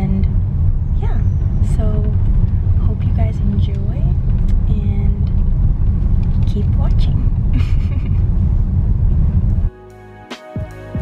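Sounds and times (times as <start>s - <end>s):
car cabin road rumble: 0.0s - 9.7s.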